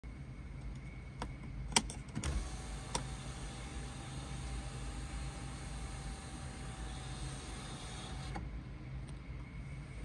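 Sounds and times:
sunroof motor whine: 0.0 - 10.0.

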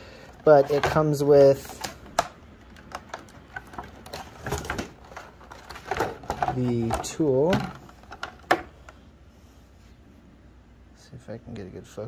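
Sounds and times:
plastic tray crackling and clicking: 0.3 - 8.7.

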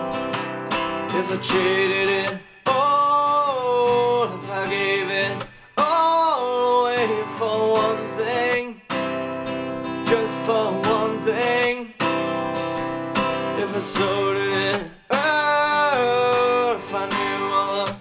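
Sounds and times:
acoustic guitar strumming: 0.0 - 18.0
man singing: 0.0 - 18.0.

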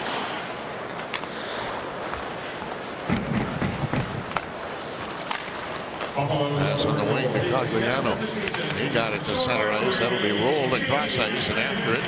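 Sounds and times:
crowd hum: 0.0 - 12.0
hockey sticks and puck clacking: 0.8 - 6.2, 8.4 - 9.2.

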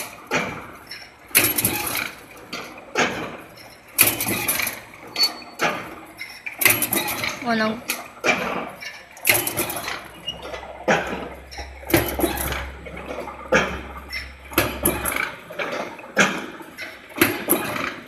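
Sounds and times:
rhythmic metallic machine clatter: 0.0 - 18.0
low machine hum: 7.2 - 17.8.

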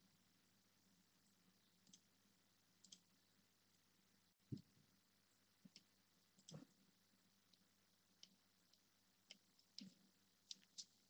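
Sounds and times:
faint computer mouse clicks: 1.8 - 2.1, 2.8 - 3.1, 5.6 - 6.8, 8.2 - 10.9.

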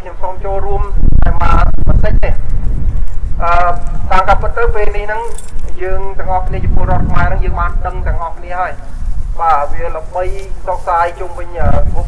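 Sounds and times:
man speaking into a microphone: 0.0 - 2.5, 3.4 - 12.0
low rumble: 0.0 - 12.0.

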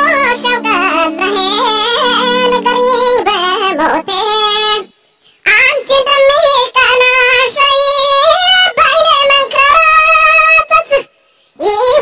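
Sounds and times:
high-pitched singing voice: 0.0 - 12.0.

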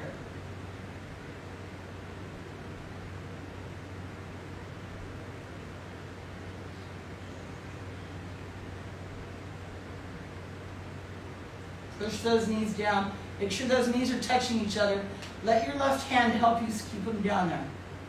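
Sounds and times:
constant low hum: 0.0 - 18.0.

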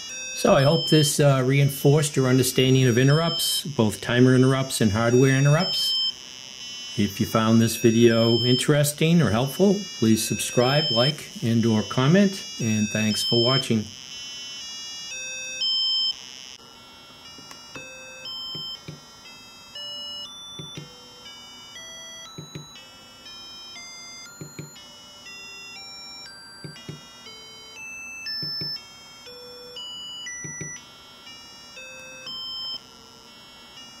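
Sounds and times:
buzzy square-wave beeps: 0.0 - 16.6, 17.3 - 21.0, 21.7 - 30.9, 31.5 - 34.0.

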